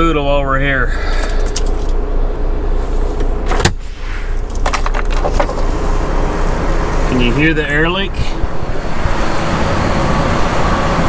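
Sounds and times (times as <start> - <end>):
truck idling: 0.0 - 11.0.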